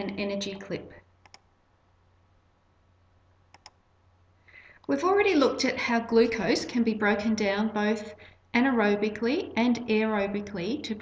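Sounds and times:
low steady hum: 0.0s - 11.0s
faint computer mouse clicks: 1.2s - 1.5s, 3.5s - 3.8s
soft breath: 4.4s - 4.9s.

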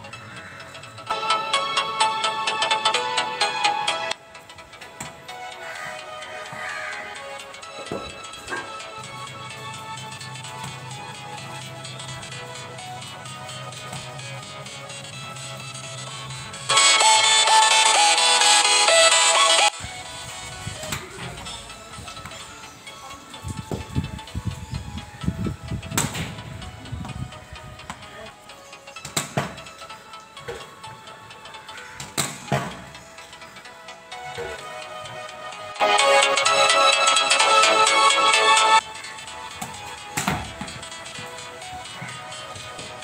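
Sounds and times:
background music: 0.0s - 43.0s
cricket bat striking ball: 40.2s - 40.5s.

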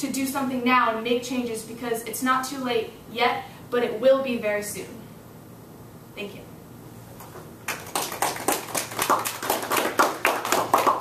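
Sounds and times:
people applauding: 7.6s - 11.0s.

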